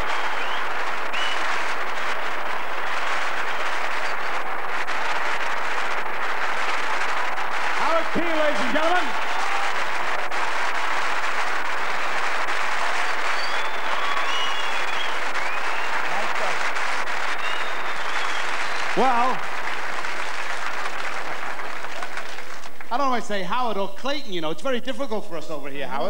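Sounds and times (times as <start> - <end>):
audience applauding: 0.0 - 23.4
man's voice: 7.8 - 9.2.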